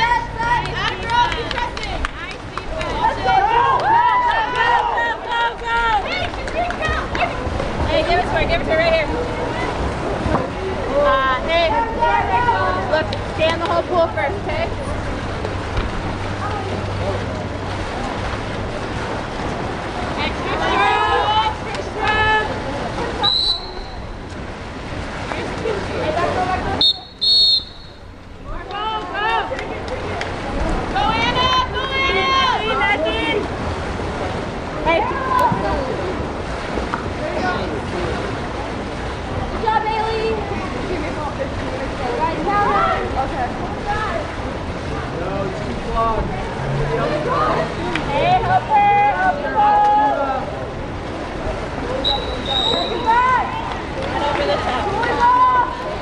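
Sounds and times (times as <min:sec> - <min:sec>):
swimmers splashing: 0:00.0 - 0:56.0
people shouting and yelling: 0:02.6 - 0:07.6, 0:20.2 - 0:24.0, 0:25.4 - 0:33.6, 0:46.5 - 0:50.8, 0:51.9 - 0:56.0
spectators shouting: 0:02.8 - 0:06.2
referee's whistle blasts: 0:23.2 - 0:24.0, 0:26.8 - 0:28.0, 0:52.0 - 0:53.1.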